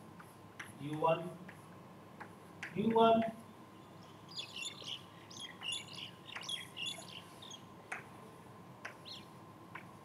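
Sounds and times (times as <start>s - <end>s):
chalk tapping on blackboard: 0.2s - 1.6s
small birds chirping: 3.7s - 8.1s, 8.8s - 9.8s.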